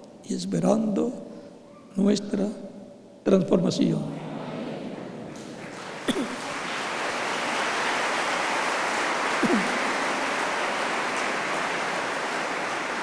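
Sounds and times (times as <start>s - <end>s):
congregation applauding: 4.4s - 13.0s.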